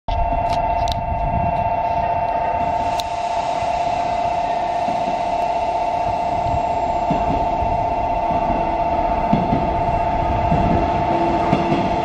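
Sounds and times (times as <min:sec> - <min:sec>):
two-pitched warning bell ringing: 0:00.2 - 0:11.9.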